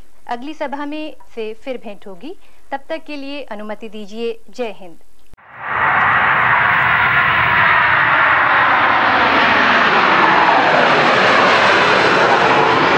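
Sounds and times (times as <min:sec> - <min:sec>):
jet engines at takeoff: 0:05.4 - 0:12.9.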